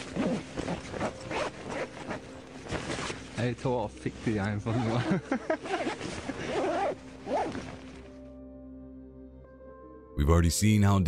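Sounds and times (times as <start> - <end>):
zipper being pulled up: 0.0 - 3.4, 4.6 - 8.0
fabric rustling: 0.0 - 8.2.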